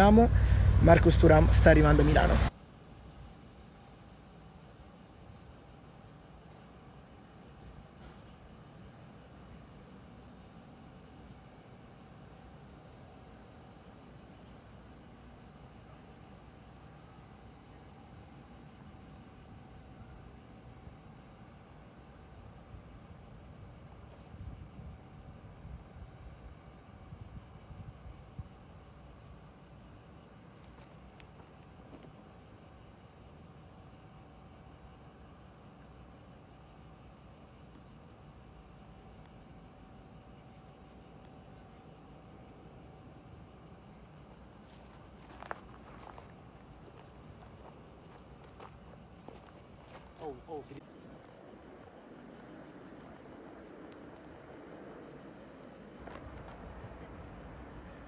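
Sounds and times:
low rumble: 0.0 - 2.5.

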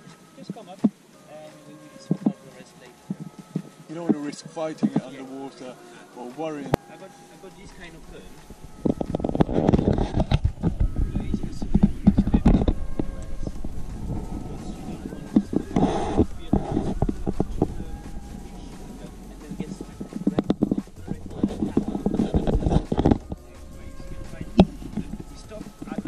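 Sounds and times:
man talking muffled: 10.8 - 13.6, 14.4 - 26.0.

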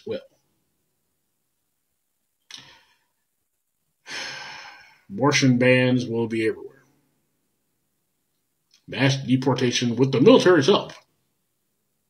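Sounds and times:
man breathing through mouth: 4.0 - 5.1.

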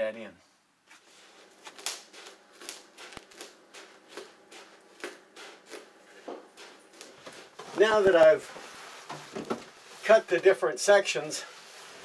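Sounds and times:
scissors cutting foil insulation: 1.6 - 7.2.

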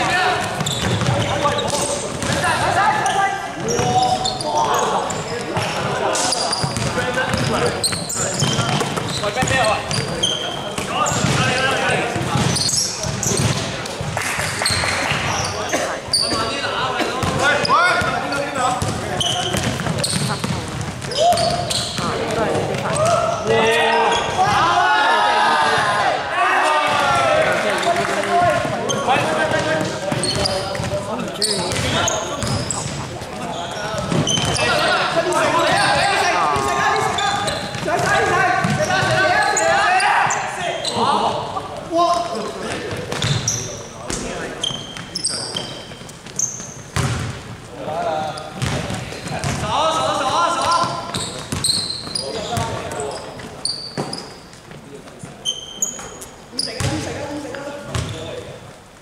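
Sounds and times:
sneaker squeaks: 0.0 - 24.6, 27.7 - 41.4, 42.0 - 47.4, 48.3 - 57.2, 57.9 - 58.4
players calling out: 0.0 - 54.4
basketball bouncing on hardwood: 0.5 - 1.3, 31.7 - 33.0, 47.0 - 47.4, 48.6 - 49.6.

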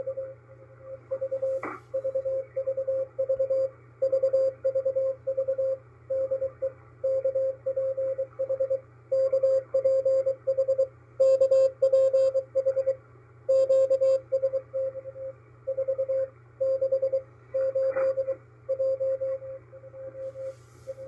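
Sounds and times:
morse code tone: 1.1 - 21.0
receiver hiss: 19.2 - 21.0.

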